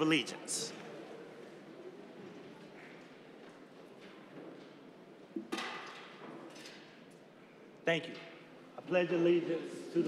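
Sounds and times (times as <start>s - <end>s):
people rustling and shuffling: 0.0s - 10.0s.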